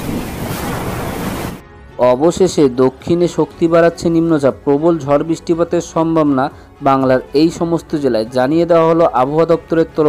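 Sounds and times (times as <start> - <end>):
heavy rain: 0.0 - 1.6
storm wind: 0.0 - 1.6.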